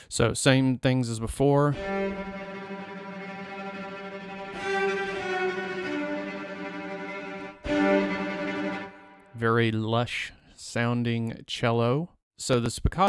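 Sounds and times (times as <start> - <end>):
cello tremolo notes: 1.7 - 9.5.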